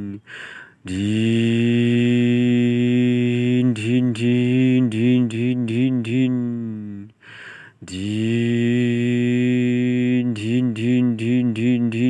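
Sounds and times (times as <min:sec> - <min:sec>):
man imitating truck engine: 0:00.0 - 0:00.3, 0:00.9 - 0:07.1.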